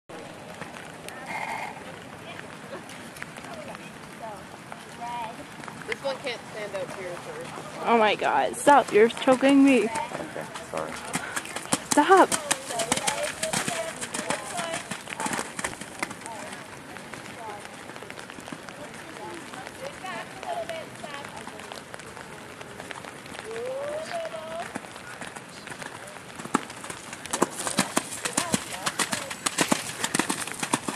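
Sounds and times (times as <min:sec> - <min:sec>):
horse hoofbeats cantering: 0:05.6 - 0:30.9.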